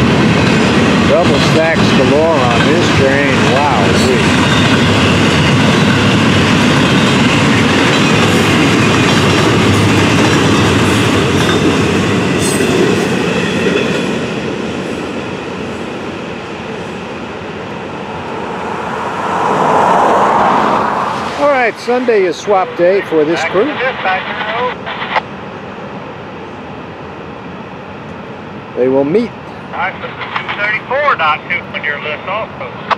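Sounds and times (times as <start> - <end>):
train cars clanking: 0.0 - 14.8, 29.5 - 30.8
train wheels rumbling on rails: 0.0 - 19.8, 28.0 - 32.9.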